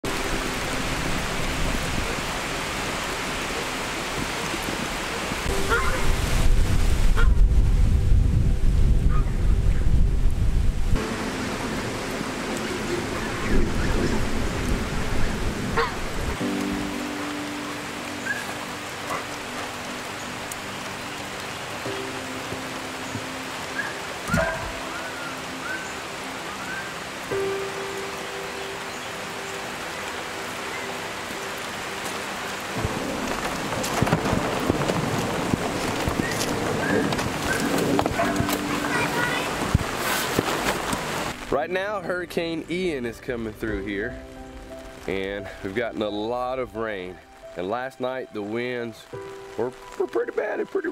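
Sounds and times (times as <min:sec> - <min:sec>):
steady rain: 0:00.0 - 0:50.9.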